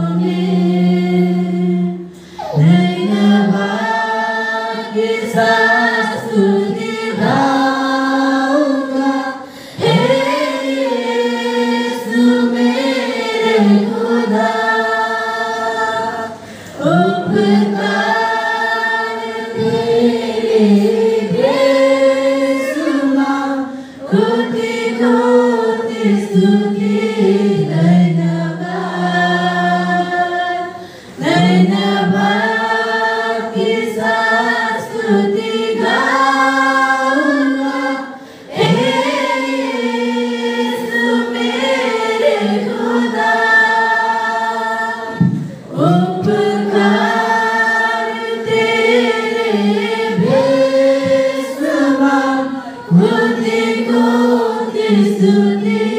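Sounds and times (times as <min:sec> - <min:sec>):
choir singing unaccompanied: 0:00.0 - 0:55.9.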